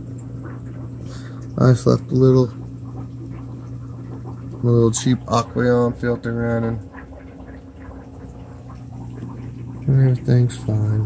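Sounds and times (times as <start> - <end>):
aquarium filter humming: 0.0 - 11.0
water trickling and gurgling: 0.0 - 11.0.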